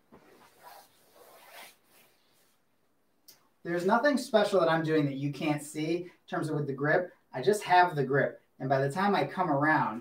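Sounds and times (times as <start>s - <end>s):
fabric rustling on a mat: 0.0s - 2.6s.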